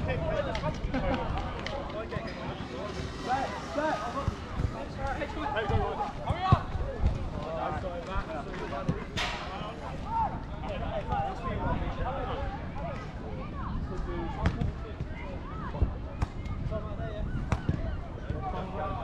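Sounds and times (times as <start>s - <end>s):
players calling and shouting: 0.1s - 19.0s.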